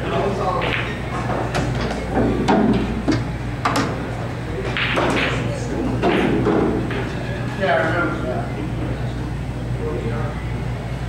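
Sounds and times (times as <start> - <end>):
murmur of voices: 0.0 - 11.0
pool balls clicking: 0.5 - 7.2.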